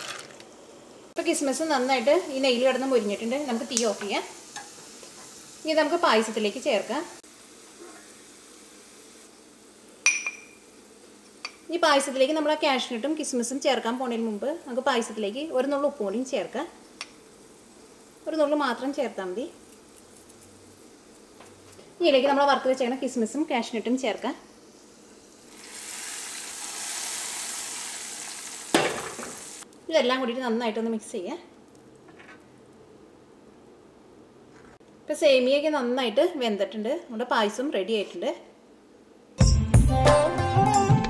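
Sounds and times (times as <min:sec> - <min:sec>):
nuts frying in a pan: 0:00.0 - 0:29.8.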